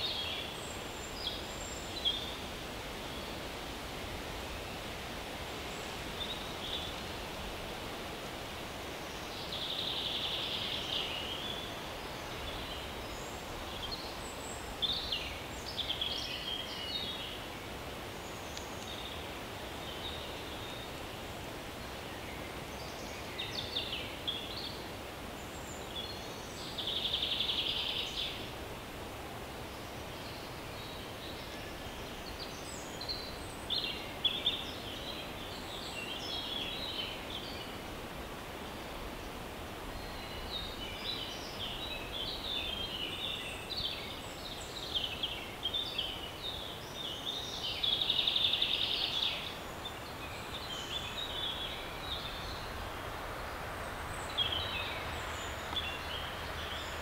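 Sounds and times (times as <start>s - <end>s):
steady background hiss: 0.0s - 57.0s
birds chirping and trilling: 40.0s - 57.0s.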